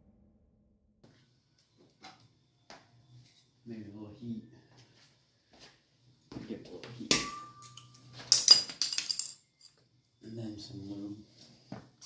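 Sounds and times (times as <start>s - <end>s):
metal tool striking and ringing: 7.1s - 9.2s
metal tools clinking: 7.1s - 9.8s.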